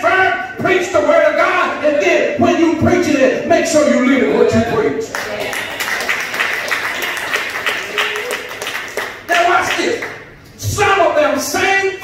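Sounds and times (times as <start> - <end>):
hand clapping: 5.1 - 10.3.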